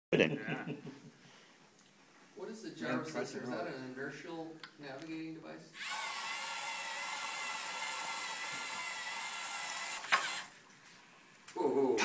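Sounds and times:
robot motors whining: 0:05.8 - 0:10.6.

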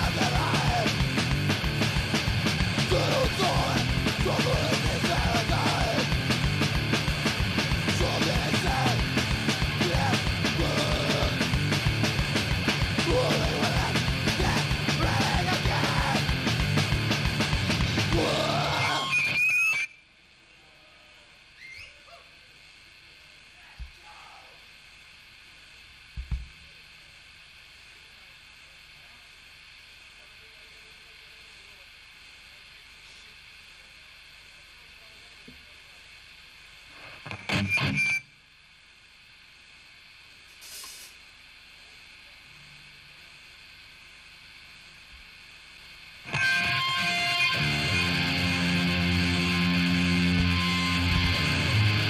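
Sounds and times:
electric guitar burst: 0:00.0 - 0:19.4, 0:46.3 - 0:52.0
distorted guitar and bass metal song: 0:00.0 - 0:19.9, 0:37.2 - 0:38.2, 0:46.2 - 0:52.0
amplifier hum and hiss: 0:00.0 - 0:52.0.

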